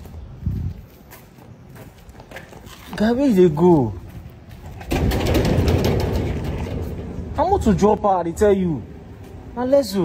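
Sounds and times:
metal gate rattling and scraping: 4.6s - 7.7s.

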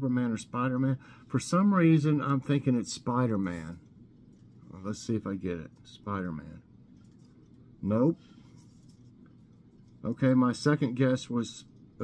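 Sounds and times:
faint scratchy rustle: 6.9s - 12.0s.

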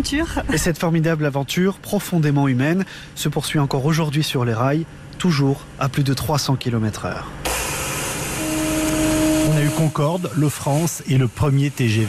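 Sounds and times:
steady tone: 7.4s - 11.3s
high-speed train rushing past: 7.4s - 12.0s.

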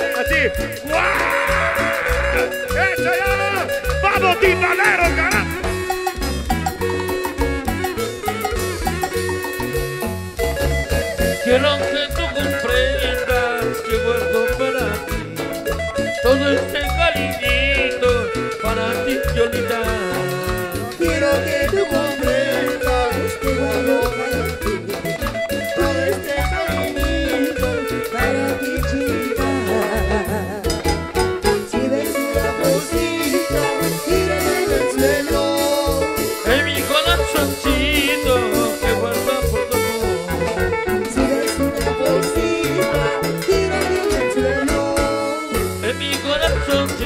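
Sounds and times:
live latin dance band music: 0.0s - 47.0s.

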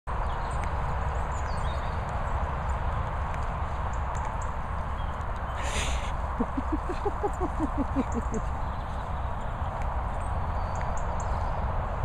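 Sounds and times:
short hiss: 5.6s - 6.1s.

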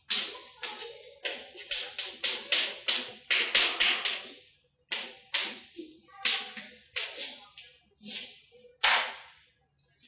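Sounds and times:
chalk tapping on blackboard: 0.0s - 9.4s.

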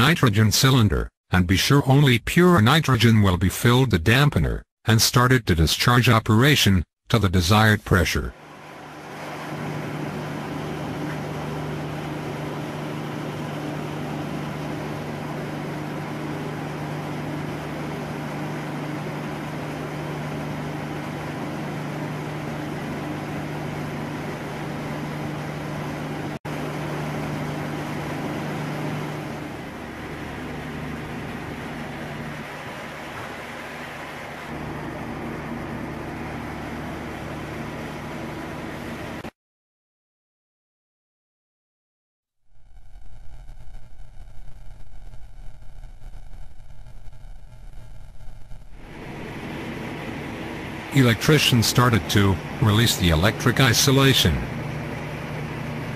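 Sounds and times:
drilling rig machinery running: 8.4s - 39.3s, 48.8s - 55.9s.

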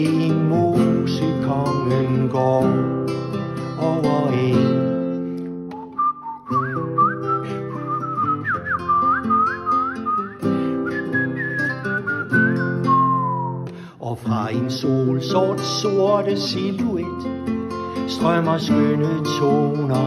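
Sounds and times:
acoustic guitar strumming: 0.0s - 20.0s
person singing folk song: 0.0s - 20.0s
man whistling a melody: 5.5s - 14.0s.

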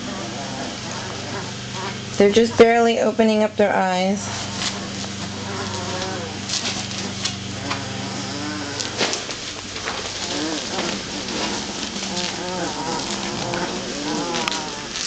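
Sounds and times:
puppies whimpering and squealing: 0.0s - 3.1s, 3.9s - 9.1s, 10.2s - 15.0s
steady low hum: 0.0s - 15.0s
rustling on a blanket: 4.3s - 15.0s.

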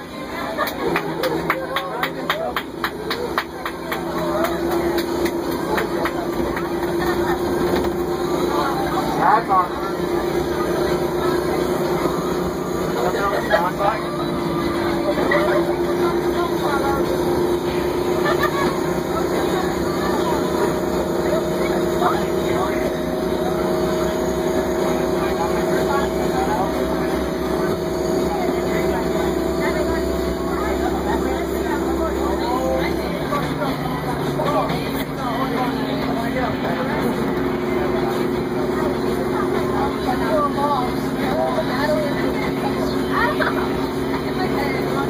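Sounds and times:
bus engine drone: 0.0s - 45.0s
passengers talking: 0.0s - 45.0s.

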